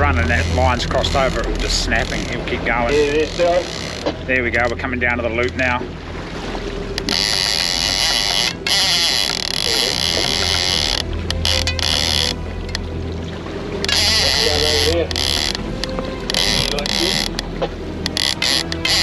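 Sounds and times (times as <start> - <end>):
fishing reel drag ratchet buzzing: 3.3 - 4.0, 7.0 - 12.8, 13.8 - 19.0.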